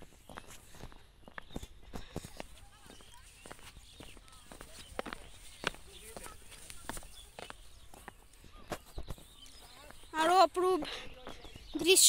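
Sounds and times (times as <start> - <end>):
faint voices: 0.0 - 12.0
footsteps on stone path: 0.0 - 12.0.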